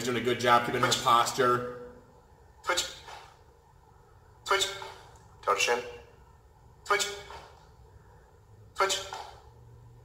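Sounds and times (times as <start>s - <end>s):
man calling out: 2.6s - 3.2s, 4.4s - 6.1s, 6.8s - 7.5s, 8.7s - 9.4s.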